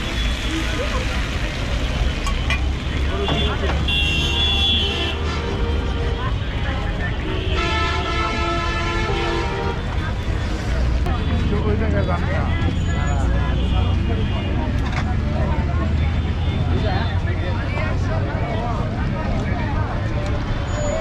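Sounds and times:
chatter of many voices: 0:00.0 - 0:21.0
traffic rumble: 0:00.0 - 0:21.0
vehicle horn: 0:03.2 - 0:06.4, 0:07.2 - 0:09.9.

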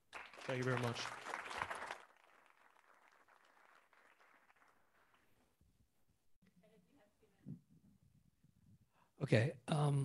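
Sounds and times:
audience applause: 0:00.0 - 0:05.4.

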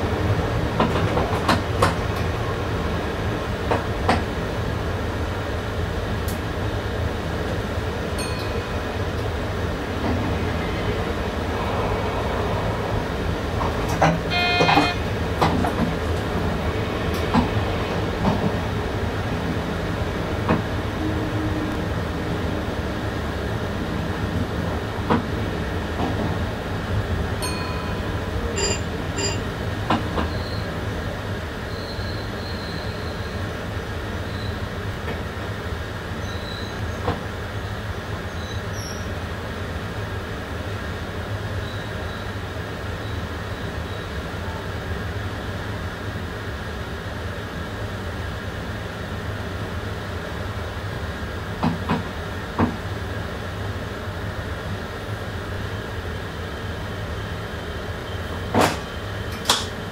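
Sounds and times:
train rumbling on track: 0:00.0 - 0:59.9.

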